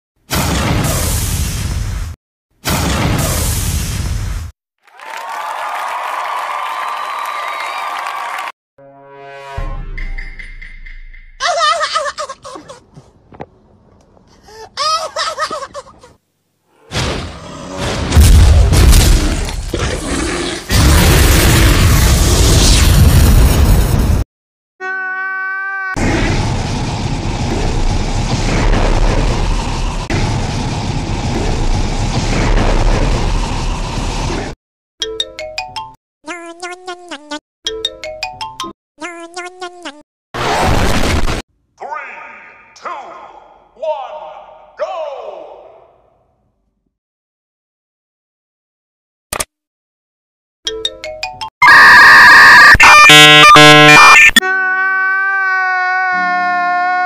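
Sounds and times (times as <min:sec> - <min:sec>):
voice calling out with echo: 0:41.8 - 0:46.0.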